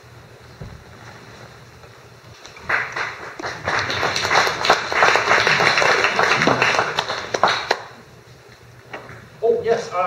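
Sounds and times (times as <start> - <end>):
audience applauding: 2.6 - 8.0.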